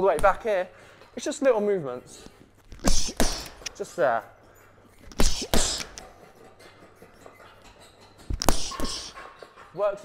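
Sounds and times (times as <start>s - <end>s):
boxing gloves punching heavy bag: 0.0s - 0.5s, 2.7s - 3.9s, 5.0s - 6.2s, 8.2s - 9.2s.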